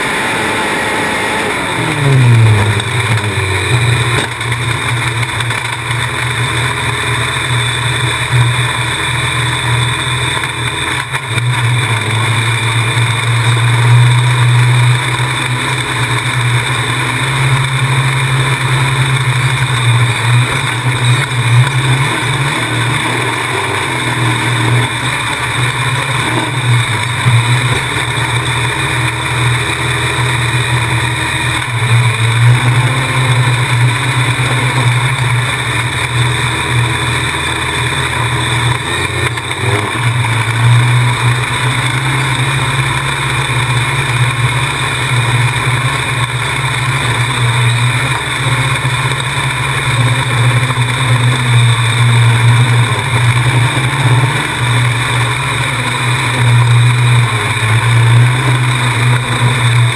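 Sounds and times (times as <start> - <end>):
race car engine running hard: 0.0 - 59.9.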